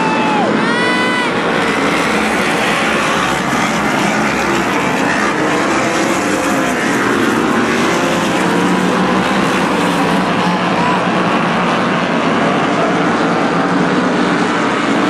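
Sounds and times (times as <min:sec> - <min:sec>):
race car engines droning: 0:00.0 - 0:15.0.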